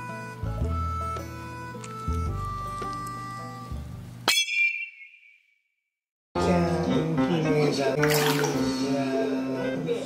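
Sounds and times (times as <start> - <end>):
background music: 0.0 - 4.3, 6.4 - 10.0.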